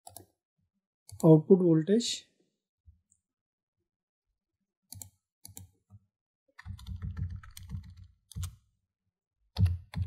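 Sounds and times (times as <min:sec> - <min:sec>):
computer keyboard keys clicking: 0:06.6 - 0:08.6, 0:09.6 - 0:10.0.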